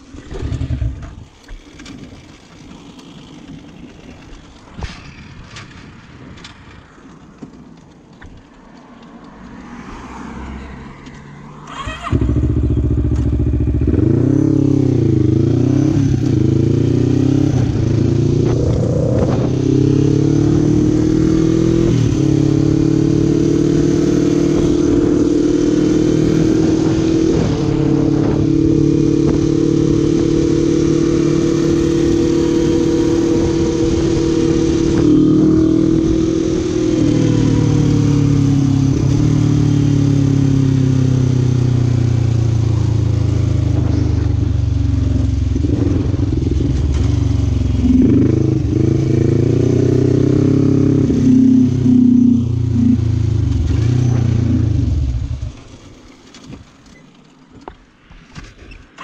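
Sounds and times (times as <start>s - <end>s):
quad bike engine running: 11.7s - 57.0s.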